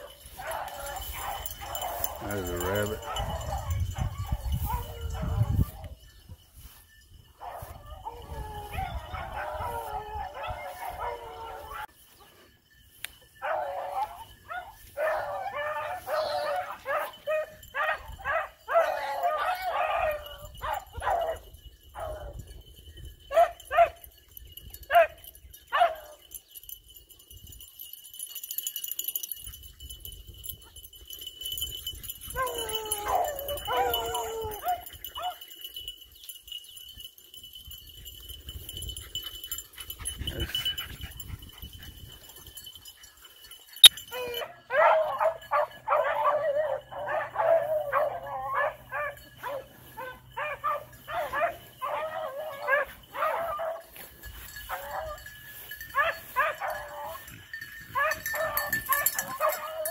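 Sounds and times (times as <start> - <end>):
hounds baying: 0.0 - 6.0, 7.3 - 22.5, 23.3 - 26.4, 30.6 - 36.0, 38.7 - 59.9.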